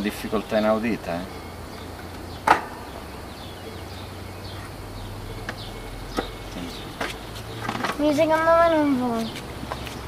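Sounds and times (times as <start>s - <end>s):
bird chirps: 0.0s - 10.0s.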